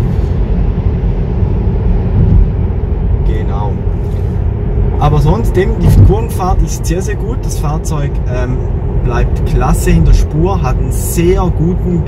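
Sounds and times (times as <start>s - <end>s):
tyre and road noise in car: 0.0s - 12.0s.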